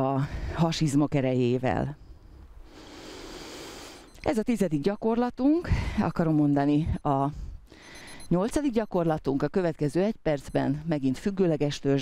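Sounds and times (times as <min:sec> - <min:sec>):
outdoor background hiss: 0:00.0 - 0:08.8.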